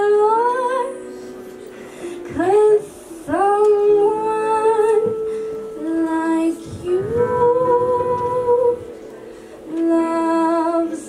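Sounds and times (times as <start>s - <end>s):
girl singing long notes: 2.2s - 9.1s.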